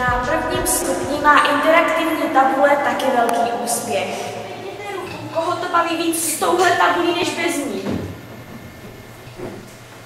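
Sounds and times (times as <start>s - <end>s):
faint hum: 0.0s - 6.3s.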